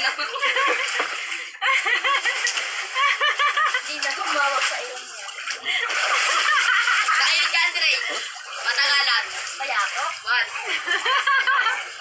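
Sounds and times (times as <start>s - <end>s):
water splashing in a pool: 0.0s - 12.0s.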